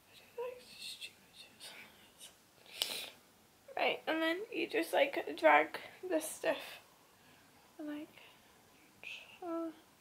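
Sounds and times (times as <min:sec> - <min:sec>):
faint breathy whispering: 0:00.0 - 0:03.2, 0:07.8 - 0:09.9.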